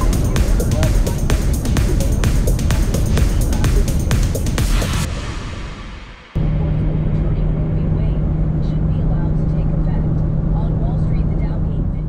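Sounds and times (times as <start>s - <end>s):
car cabin road and engine noise: 0.0s - 5.1s, 6.4s - 12.0s.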